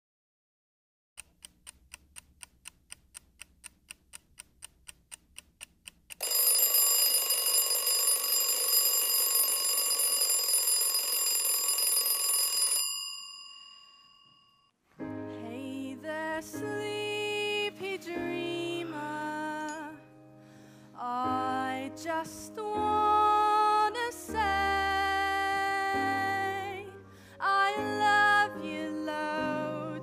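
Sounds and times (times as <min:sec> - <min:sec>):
alarm clock ticking: 0:01.2 - 0:13.9
alarm clock bell ringing: 0:06.2 - 0:14.7.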